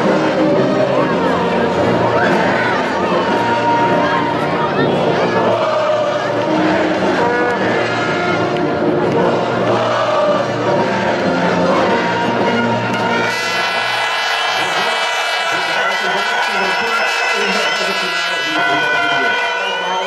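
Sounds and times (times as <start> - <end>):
crowd singing and chanting: 0.0 - 20.0
music: 0.0 - 20.0.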